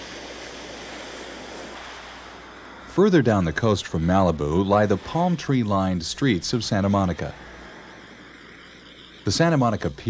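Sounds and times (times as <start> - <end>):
ocean surf washing onto beach: 0.0 - 8.3.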